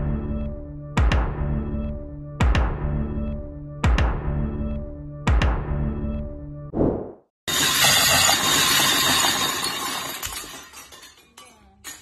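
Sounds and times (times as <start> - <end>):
music: 0.0 - 6.7
glass pieces clinking: 7.5 - 12.0
glass shattering: 7.5 - 12.0.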